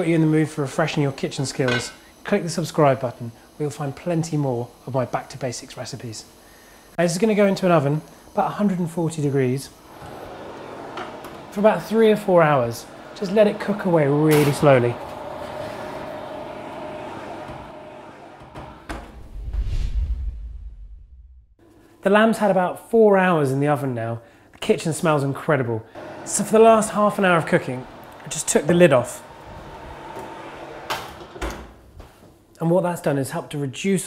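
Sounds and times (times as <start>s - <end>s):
oven humming: 0.0s - 19.3s, 24.7s - 32.2s
low rumble: 17.0s - 21.6s.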